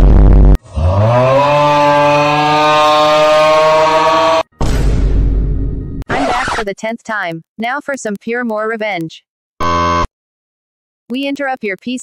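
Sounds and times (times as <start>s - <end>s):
person screaming: 0.8s - 4.4s.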